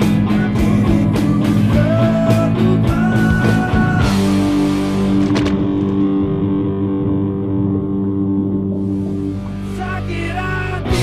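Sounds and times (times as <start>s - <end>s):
electric guitar sustained notes: 0.0s - 11.0s
rock backing track: 0.0s - 11.0s.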